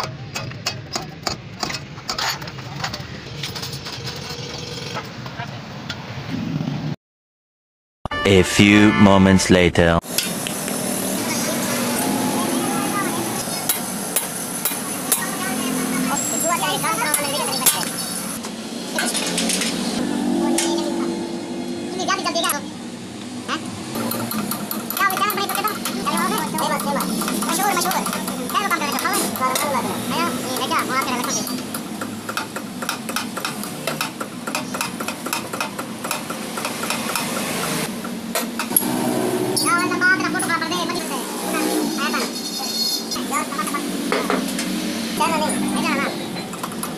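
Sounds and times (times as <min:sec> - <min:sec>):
workshop noise: 0:00.0 - 0:06.3, 0:08.1 - 0:46.9.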